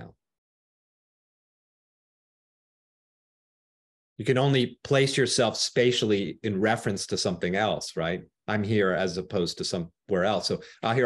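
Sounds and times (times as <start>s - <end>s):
person speaking: 4.2s - 11.0s.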